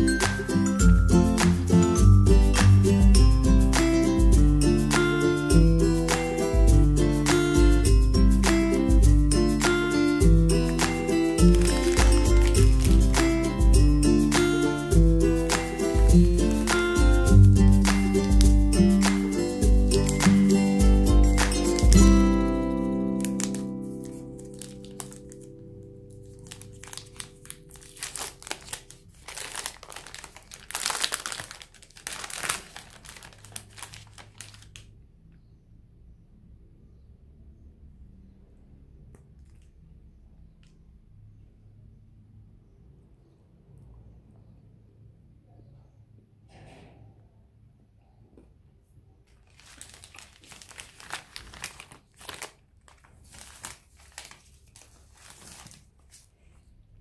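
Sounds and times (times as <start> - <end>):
wrapper crinkling: 9.6 - 35.0, 49.3 - 56.5.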